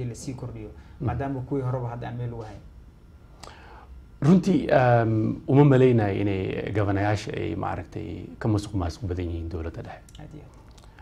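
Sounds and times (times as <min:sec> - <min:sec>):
man talking: 0:00.0 - 0:02.7, 0:04.2 - 0:10.6.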